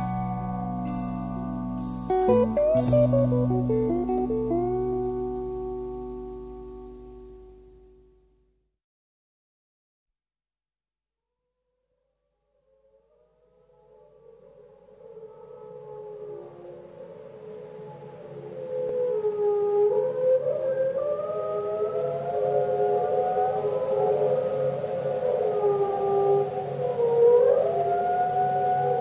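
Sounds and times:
whale song calls: 0:00.0 - 0:07.2, 0:13.9 - 0:29.0
low pulse: 0:00.0 - 0:08.4.

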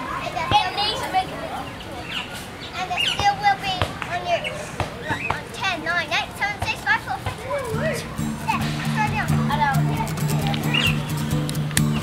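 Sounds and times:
young children calling and babbling: 0:00.0 - 0:12.0.

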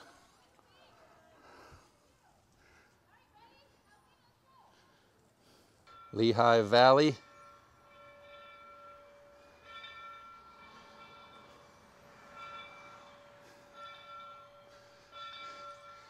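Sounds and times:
locomotive bell ringing: 0:04.7 - 0:16.0.

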